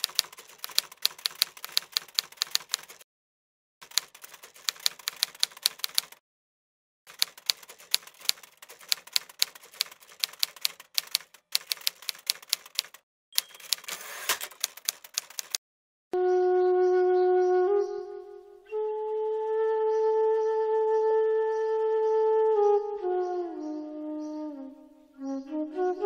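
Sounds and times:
typewriter key strikes: 0:00.0 - 0:03.0, 0:07.1 - 0:15.6.

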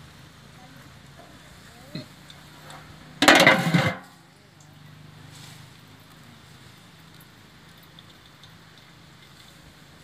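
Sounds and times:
metal cookware clattering: 0:03.2 - 0:04.1.

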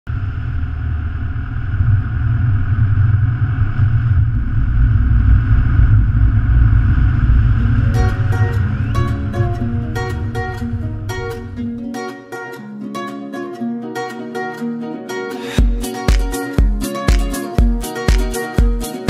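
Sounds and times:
car driving rumble: 0:00.1 - 0:11.8
plucked guitar music: 0:07.6 - 0:19.0.

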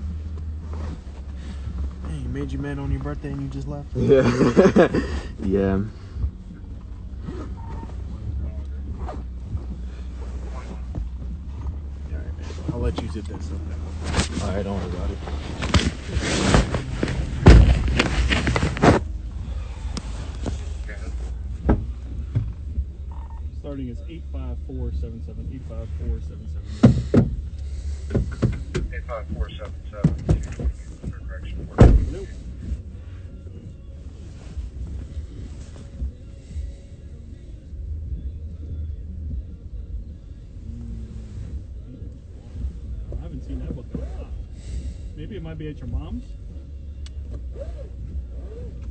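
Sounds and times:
car engine rumble: 0:00.0 - 0:48.9
road noise: 0:00.0 - 0:48.9
rustling on covered microphone: 0:06.3 - 0:23.0, 0:25.5 - 0:36.8
heavy thump: 0:15.6 - 0:19.1, 0:21.5 - 0:22.6, 0:26.7 - 0:28.9, 0:31.8 - 0:32.3.

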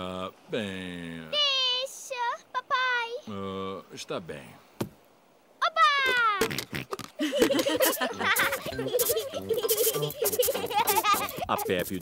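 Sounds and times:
cartoon scratchy scraping strokes: 0:06.4 - 0:12.0
music or giggling: 0:06.5 - 0:12.0.

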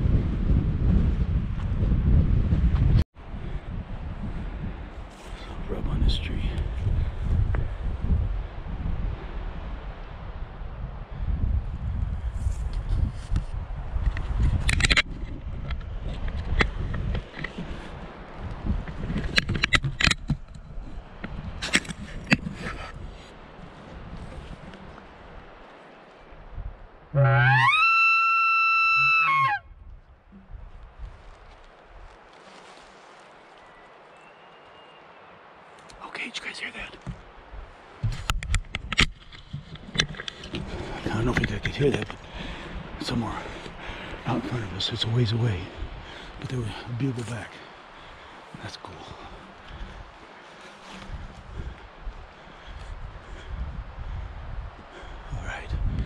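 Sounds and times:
wind on microphone: 0:00.0 - 0:32.9, 0:36.8 - 0:56.0
camera handling rustling and knocks: 0:18.8 - 0:20.6, 0:38.0 - 0:42.2
elk bugle call: 0:27.1 - 0:29.6.

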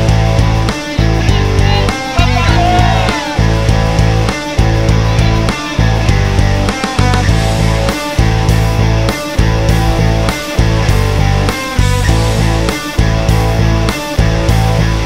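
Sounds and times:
rock music with guitar: 0:00.0 - 0:15.0.

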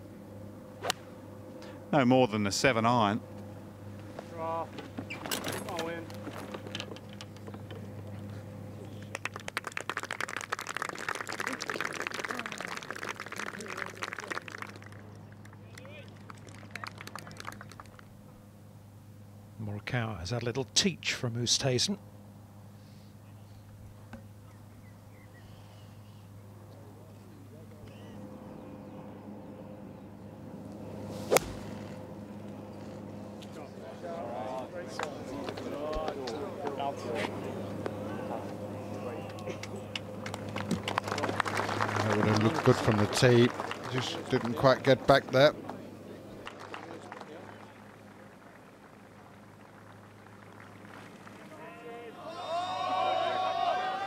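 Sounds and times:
golf club striking ball: 0:00.8 - 0:01.1, 0:31.2 - 0:31.8
crowd applauding: 0:08.9 - 0:18.1, 0:39.2 - 0:54.0.

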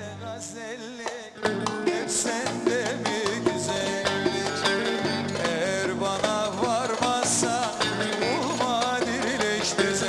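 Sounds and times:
folk dance tune on lute: 0:01.4 - 0:10.0.

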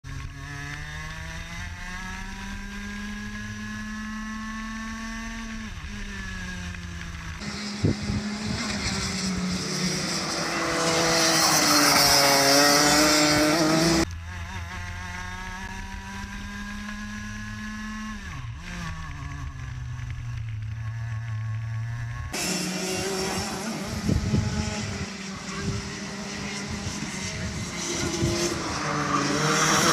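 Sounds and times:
kart engine at high revs: 0:00.1 - 0:29.9
kart engine passing by: 0:00.1 - 0:29.9
wind noise: 0:07.4 - 0:14.0, 0:22.3 - 0:29.9.

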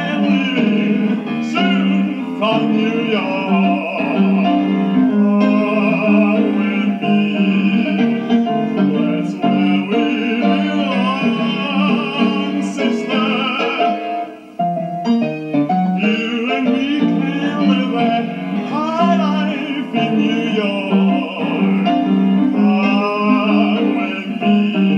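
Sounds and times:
man singing operatically: 0:00.0 - 0:14.6, 0:15.9 - 0:24.9
grand piano: 0:00.0 - 0:24.9.

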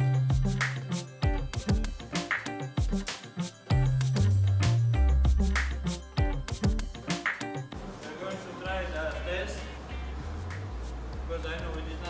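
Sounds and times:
steady low hum: 0:08.6 - 0:12.0.

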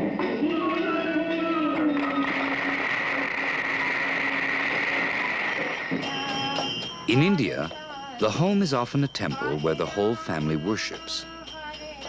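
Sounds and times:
audience applauding: 0:01.8 - 0:05.8.

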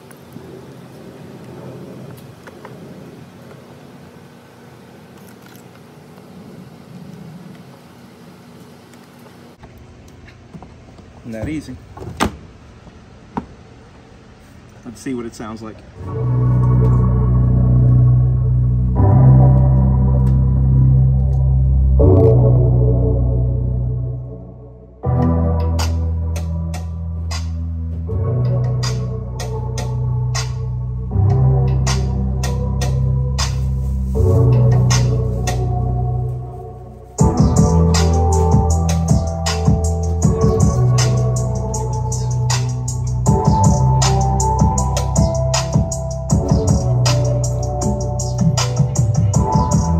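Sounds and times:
bass-heavy music: 0:16.0 - 0:49.9
clicking drum beat: 0:43.3 - 0:49.9.

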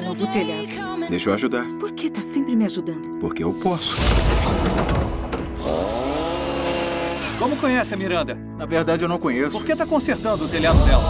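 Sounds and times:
miter saw motor whine: 0:05.6 - 0:07.9.

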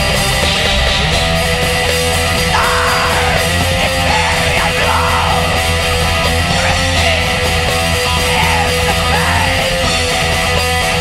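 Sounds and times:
extreme metal music: 0:00.0 - 0:11.0.

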